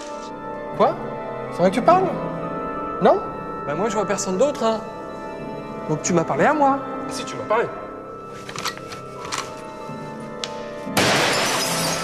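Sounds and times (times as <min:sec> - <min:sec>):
mirror glass smashing: 0:11.0 - 0:12.0.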